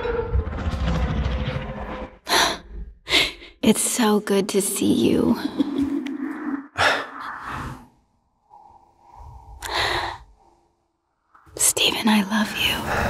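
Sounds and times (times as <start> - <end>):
sharp in-breath: 6.8 - 11.0
man breathing emotionally: 6.8 - 11.2.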